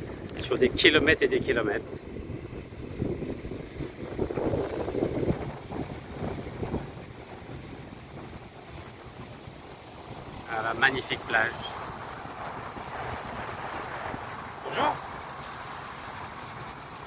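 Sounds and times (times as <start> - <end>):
ocean surf breaking on beach: 0.0 - 17.0
wind buffeting microphone: 0.0 - 17.0.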